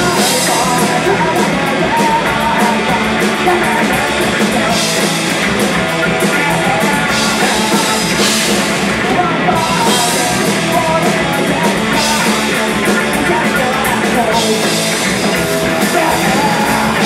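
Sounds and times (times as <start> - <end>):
bass guitar: 0.0 - 17.0
distorted electric guitars: 0.0 - 17.0
drum kit: 0.0 - 17.0
man singing: 0.0 - 17.0.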